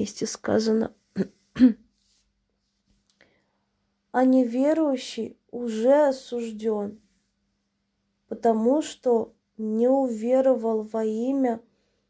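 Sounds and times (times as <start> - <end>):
woman clearing her throat: 1.2 - 1.9.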